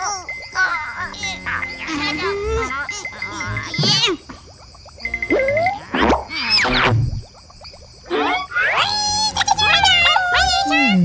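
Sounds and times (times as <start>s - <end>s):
springy boings: 0.0s - 10.1s.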